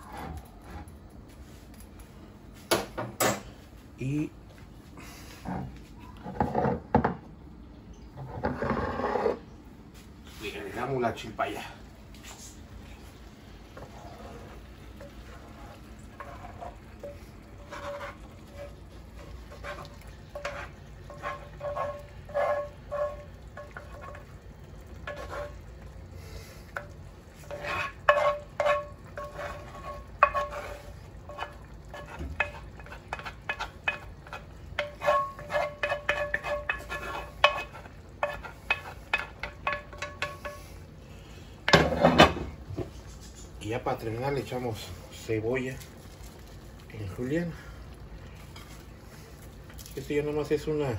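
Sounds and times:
wooden spoon scraping skillet: 0.0 - 1.7, 5.0 - 7.2, 8.1 - 10.6, 13.6 - 25.8, 26.5 - 40.9, 41.6 - 46.6, 48.4 - 50.2.

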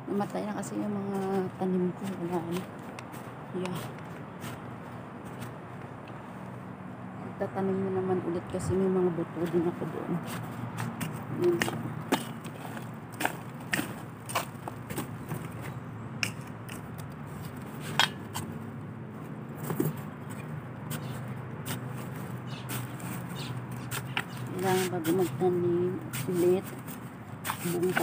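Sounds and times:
steady background noise: 0.0 - 28.0
hand working soil clicks and scrapes: 0.1 - 5.6, 9.3 - 18.6, 19.5 - 28.0.

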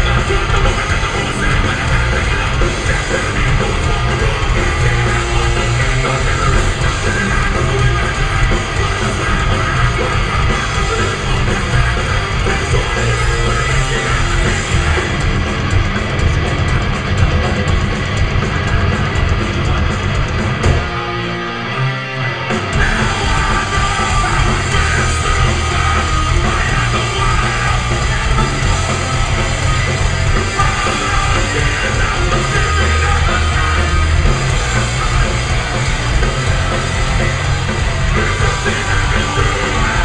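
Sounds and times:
punk band playing live: 0.0 - 40.0.

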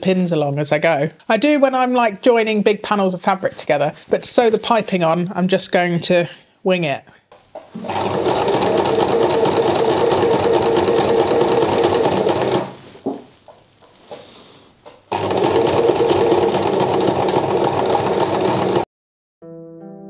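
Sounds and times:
sewing machine stitching: 7.6 - 12.8, 15.0 - 18.9.

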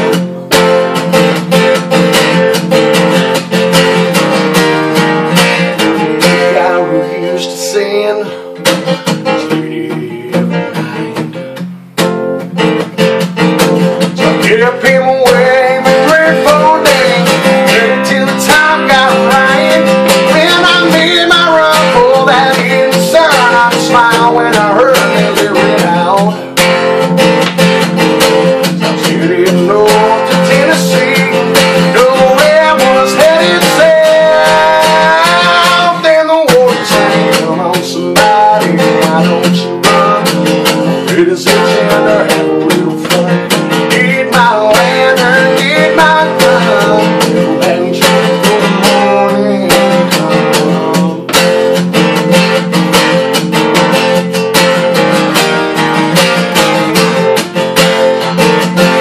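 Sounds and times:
acoustic guitar strumming chords: 0.0 - 59.0
man singing: 4.9 - 11.6, 13.6 - 26.8, 27.9 - 54.3, 55.2 - 59.0.

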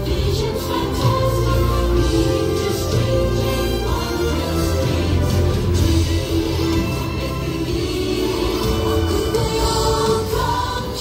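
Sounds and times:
bass-heavy backing music: 0.0 - 11.0
choir singing: 0.0 - 11.0.

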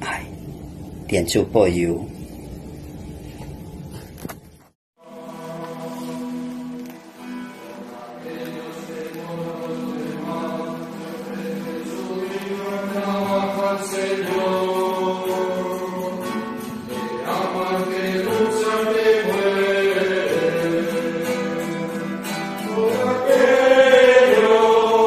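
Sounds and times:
men singing a hymn: 5.0 - 25.0.

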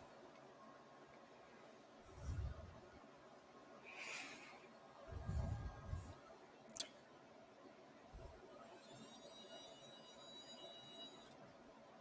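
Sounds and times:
faint high motor whine: 0.0 - 12.0.

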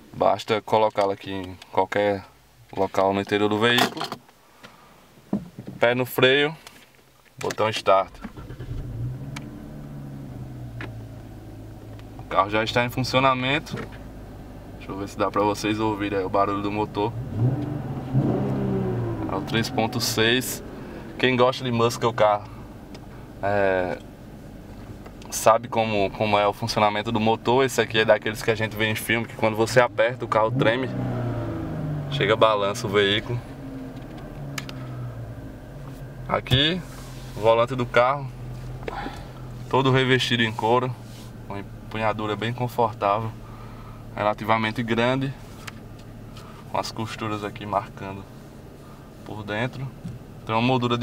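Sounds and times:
car engine starting and idling: 7.5 - 51.0.

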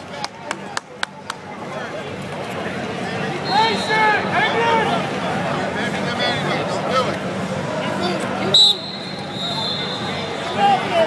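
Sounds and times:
chatter of voices: 0.0 - 11.0
sharp hand claps: 0.2 - 1.5.

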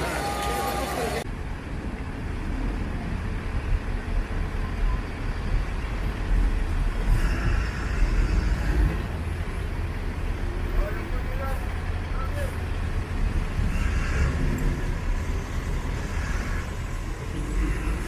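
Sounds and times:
cars driving past: 0.0 - 18.0.

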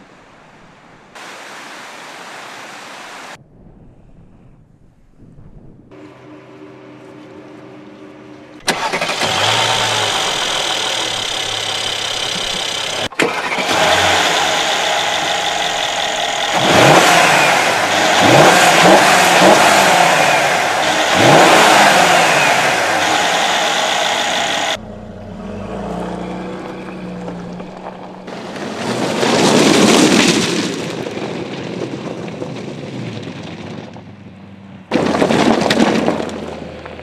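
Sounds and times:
car engine revving: 5.9 - 29.1.

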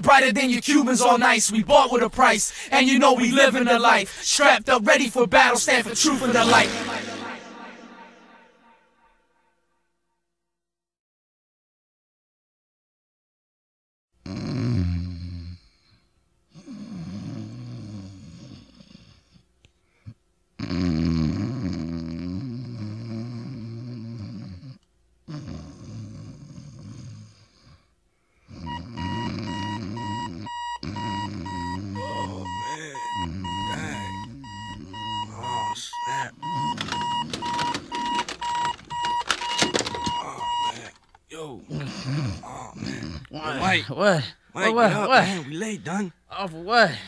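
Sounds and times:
alarm clock beeping: 4.9 - 8.5, 28.7 - 41.0
man snoring: 14.2 - 15.8, 16.6 - 19.3, 20.6 - 27.8, 28.5 - 37.4, 41.7 - 43.8
clicks and rustles: 36.7 - 40.2.

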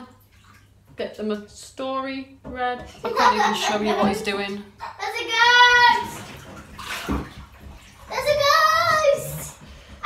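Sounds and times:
bath water splashing: 0.0 - 1.8, 2.8 - 10.0.

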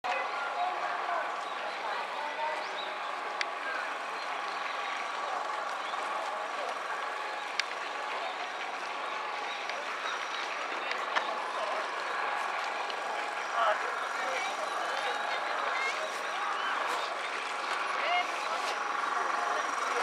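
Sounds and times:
people talking indistinctly: 0.0 - 20.0.

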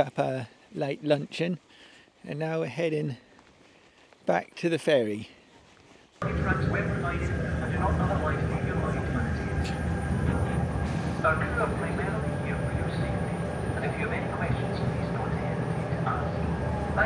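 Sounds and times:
ferry engines rumbling: 6.2 - 17.0
people talking: 6.2 - 17.0.

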